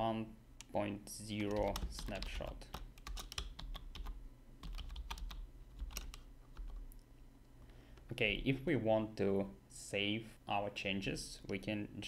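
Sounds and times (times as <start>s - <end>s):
typing on computer keyboard: 1.4s - 6.8s.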